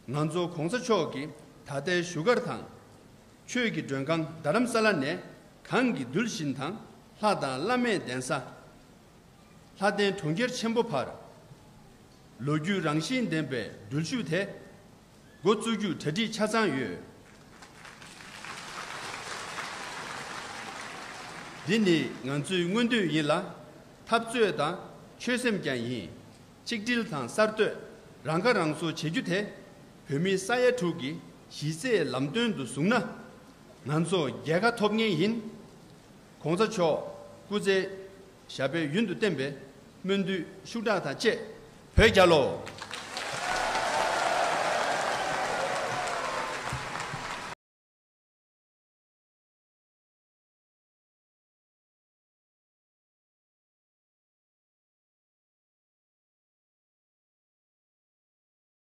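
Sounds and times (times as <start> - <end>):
audience applause: 17.5 - 22.2, 42.7 - 47.6.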